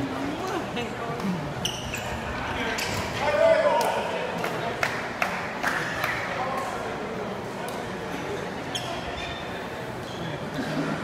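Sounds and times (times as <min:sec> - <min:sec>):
shoe squeak on court floor: 0:01.6 - 0:03.0, 0:08.7 - 0:10.3.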